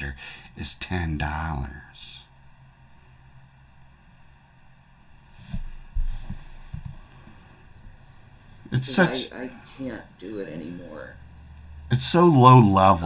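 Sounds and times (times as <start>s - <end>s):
faint hum and hiss: 0.0s - 13.0s.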